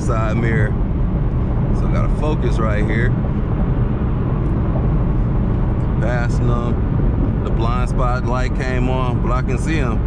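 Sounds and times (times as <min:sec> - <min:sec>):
road and engine drone in car cabin: 0:00.0 - 0:10.0.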